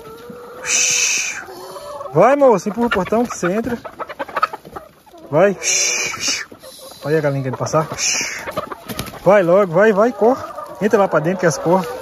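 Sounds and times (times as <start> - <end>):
faint drawn-out hen call: 0.0 - 2.1
hen hissing squawk: 0.6 - 1.8, 5.6 - 8.5.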